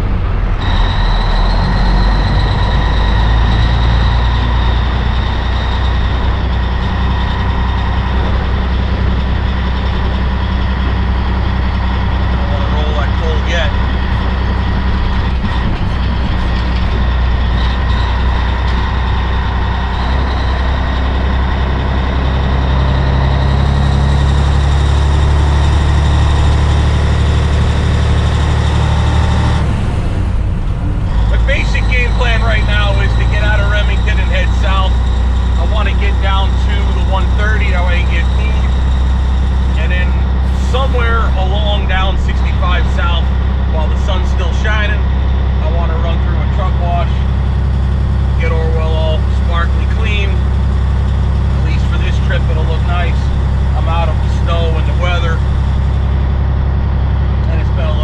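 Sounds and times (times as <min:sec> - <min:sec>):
diesel truck engine running: 0:00.0 - 0:58.0
high whine: 0:00.0 - 0:58.0.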